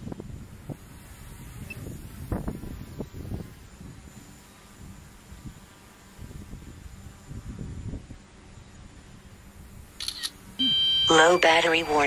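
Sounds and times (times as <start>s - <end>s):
shutter-like click: 10.0s - 10.4s
electronic alert beep: 10.6s - 12.0s
spoken warning voice: 11.1s - 12.0s.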